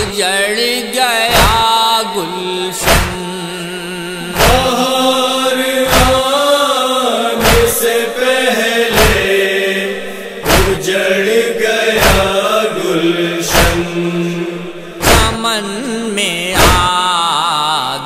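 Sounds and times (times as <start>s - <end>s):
men chanting a lament: 0.0s - 18.0s
chest-beating thumps: 1.3s - 1.7s, 2.8s - 3.2s, 4.4s - 4.8s, 5.9s - 6.3s, 7.4s - 7.9s, 8.9s - 9.4s, 10.4s - 10.9s, 11.9s - 12.4s, 13.4s - 14.0s, 14.8s - 15.5s, 16.6s - 16.9s.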